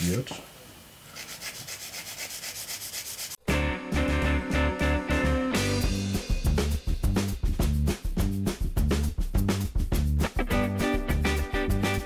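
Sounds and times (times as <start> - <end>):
nail file scraping: 1.1 - 3.4
music with heavy bass beat: 3.5 - 12.0.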